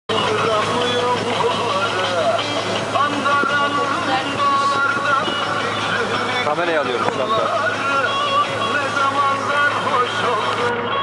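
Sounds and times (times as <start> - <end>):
background voices: 0.1 - 10.7
boat engine hum: 0.1 - 11.0.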